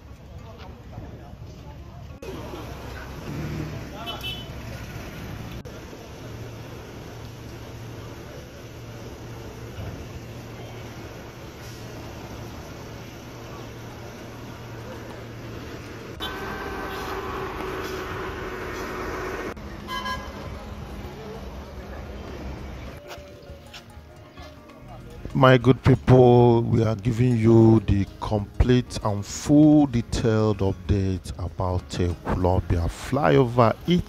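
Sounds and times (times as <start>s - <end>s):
low engine rumble: 0.0s - 34.0s
road traffic: 0.0s - 34.0s
vehicle horn toot: 4.0s - 4.6s, 16.2s - 18.9s, 19.9s - 20.4s.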